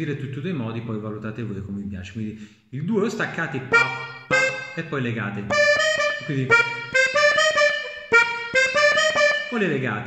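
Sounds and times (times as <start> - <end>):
button accordion two-note figure: 3.7 - 4.8, 5.5 - 9.6.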